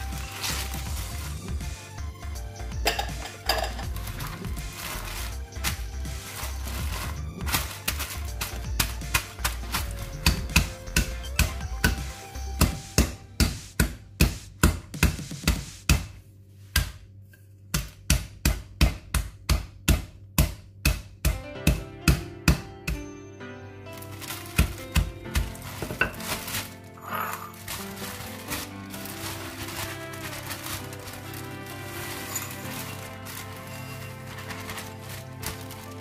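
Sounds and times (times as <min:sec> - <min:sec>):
rolling pin pounding almonds: 0:00.0 - 0:16.2, 0:23.9 - 0:36.0.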